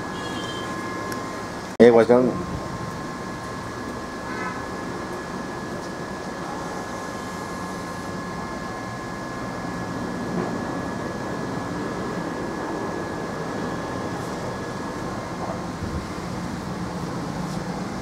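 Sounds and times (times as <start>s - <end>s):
fan noise: 0.0s - 18.0s
high whining tones: 0.0s - 18.0s.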